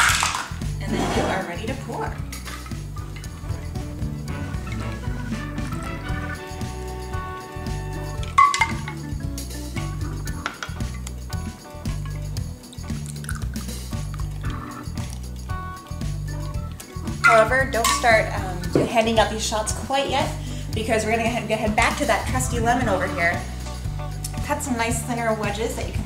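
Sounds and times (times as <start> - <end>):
background music with steady beat: 0.0 - 26.0
glasses clinking: 8.4 - 9.1, 17.2 - 18.9
drink pouring: 12.0 - 15.6.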